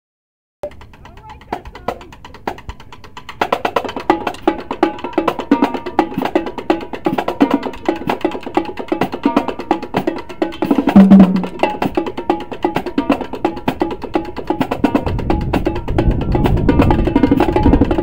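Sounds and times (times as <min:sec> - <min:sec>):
marching drumline playing: 0:00.6 - 0:18.0.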